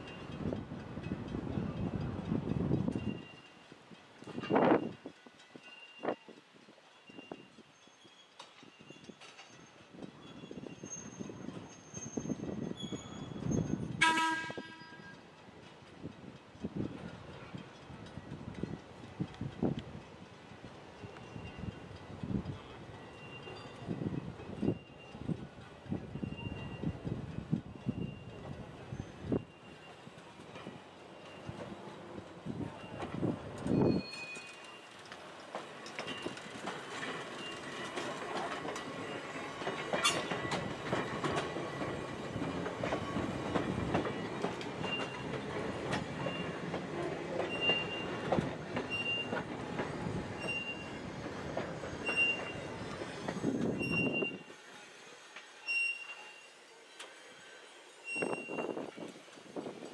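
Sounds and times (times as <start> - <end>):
wheels squealing on rails: 0.0 - 59.9
steel wheels clattering over rail joints: 6.9 - 54.5.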